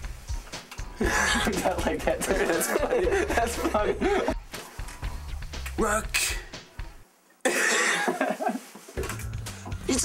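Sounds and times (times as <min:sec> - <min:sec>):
person coughing: 0:07.5 - 0:08.2.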